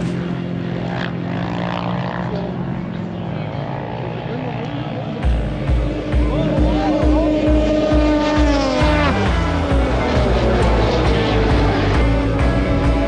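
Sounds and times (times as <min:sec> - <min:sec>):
vehicle engines droning: 0:00.0 - 0:13.0
voices in background: 0:01.9 - 0:05.4
music with heavy bass beat: 0:05.2 - 0:13.0.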